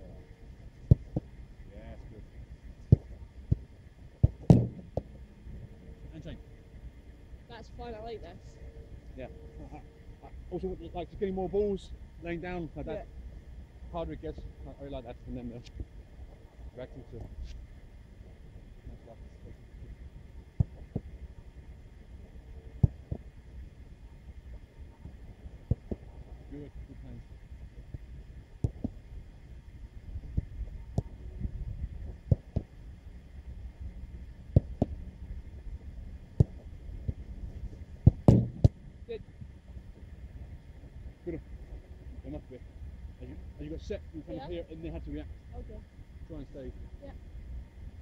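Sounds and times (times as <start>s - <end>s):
wind rumble on microphone: 0.0s - 48.0s
footballs being kicked: 38.0s - 38.8s.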